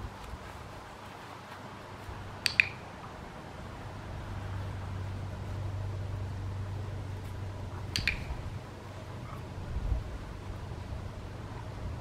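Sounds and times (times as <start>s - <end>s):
dog-training clicker clicks: 2.4s - 2.8s, 7.9s - 8.4s.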